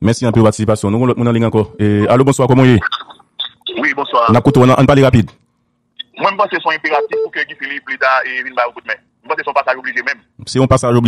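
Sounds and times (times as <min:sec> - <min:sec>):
man talking: 0:00.0 - 0:02.8, 0:03.7 - 0:05.4, 0:06.0 - 0:11.0.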